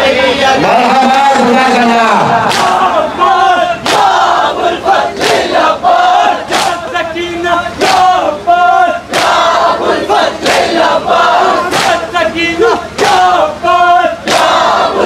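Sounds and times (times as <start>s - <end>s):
men chanting together: 0.0s - 15.0s.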